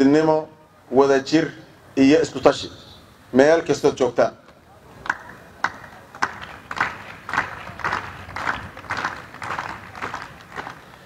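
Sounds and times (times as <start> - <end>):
crowd clapping in unison: 5.0 - 11.0.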